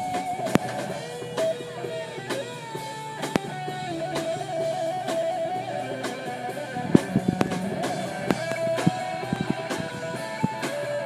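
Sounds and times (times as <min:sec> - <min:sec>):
bass guitar: 0:00.0 - 0:11.0
drum kit hits: 0:00.0 - 0:11.0
electric guitar: 0:00.0 - 0:11.0.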